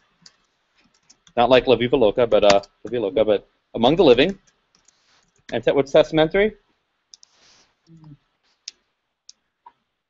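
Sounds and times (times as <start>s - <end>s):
faint sharp clicks: 7.1s - 7.4s.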